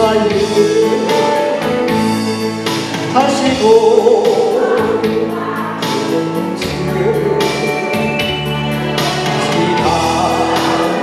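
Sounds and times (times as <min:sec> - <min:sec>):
man singing into microphone: 0:00.0 - 0:02.0, 0:03.0 - 0:08.2, 0:09.2 - 0:11.0
electronic backing track: 0:00.0 - 0:11.0.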